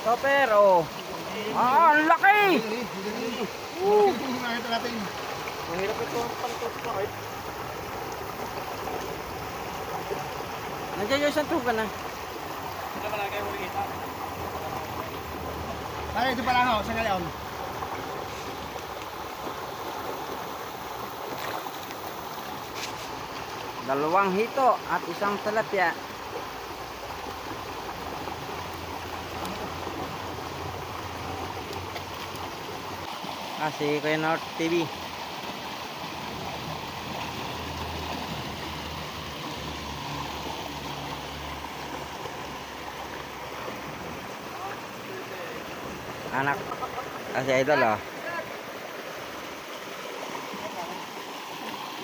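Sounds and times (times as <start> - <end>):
river current rushing: 0.0 - 52.0.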